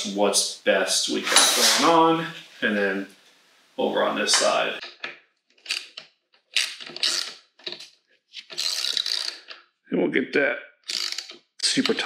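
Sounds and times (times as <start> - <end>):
socket ratchet wrench clicking: 8.6 - 9.6, 10.9 - 11.4.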